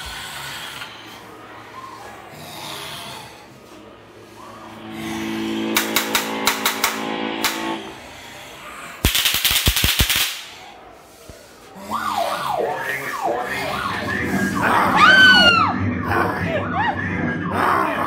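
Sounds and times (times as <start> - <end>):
low droning hum: 3.1 - 8.5
loud rattling burst: 9.0 - 10.6
falling wails or shrieks: 11.8 - 15.8.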